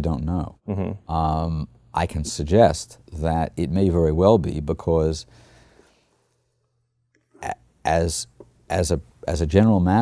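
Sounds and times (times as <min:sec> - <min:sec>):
man speaking: 0:00.0 - 0:05.2, 0:07.4 - 0:10.0
faint low room hum: 0:00.0 - 0:10.0.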